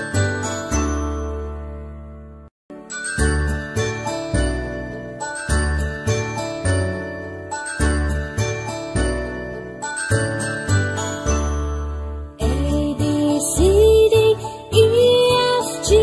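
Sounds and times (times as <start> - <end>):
tinkling bell-like instrumental tune: 0.0 - 2.1, 2.7 - 16.0.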